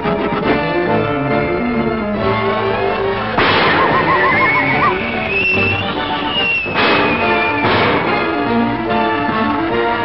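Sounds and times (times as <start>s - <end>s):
cartoon orchestral music: 0.9s - 10.0s
short crashes: 5.8s - 8.3s.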